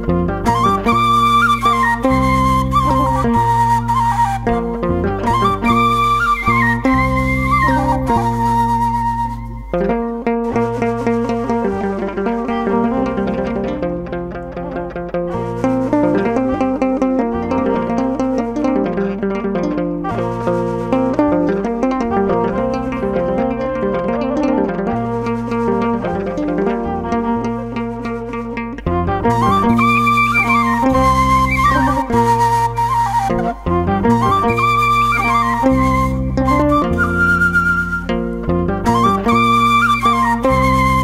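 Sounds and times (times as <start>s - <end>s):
flute-like melody: 0.0s - 41.0s
plucked-string pattern: 0.0s - 41.0s.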